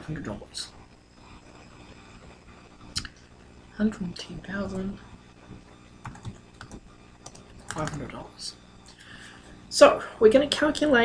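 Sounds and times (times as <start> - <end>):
computer keyboard keystrokes: 6.0 - 8.1.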